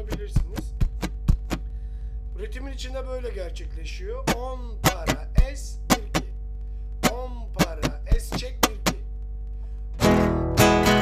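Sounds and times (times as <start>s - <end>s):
muted guitar strumming: 0.0s - 1.9s, 4.1s - 6.4s, 7.0s - 9.1s, 10.0s - 11.0s.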